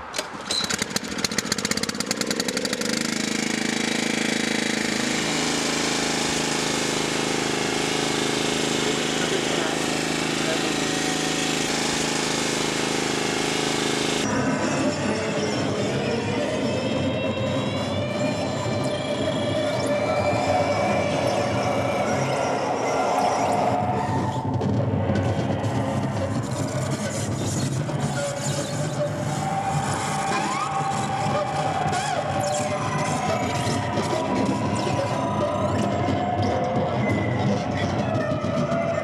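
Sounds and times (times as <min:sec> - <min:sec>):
wavering sliding squeals: 0:02.3 - 0:14.4, 0:15.2 - 0:39.0
distorted noise music: 0:03.0 - 0:39.0.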